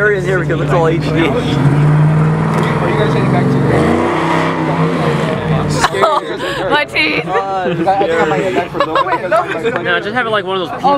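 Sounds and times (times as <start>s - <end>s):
car engine running: 0.0s - 8.9s
voices: 0.0s - 10.9s.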